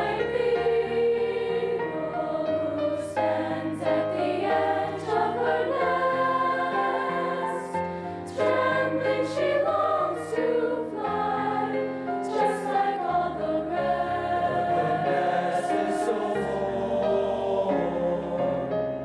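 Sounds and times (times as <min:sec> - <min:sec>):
children's choir singing: 0:00.0 - 0:19.0.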